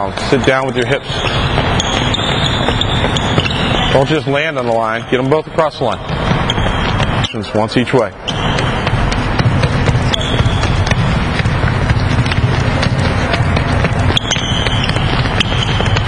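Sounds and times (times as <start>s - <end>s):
high sneaker squeaks: 0.0s - 16.0s
quick footfalls on court floor: 0.0s - 16.0s.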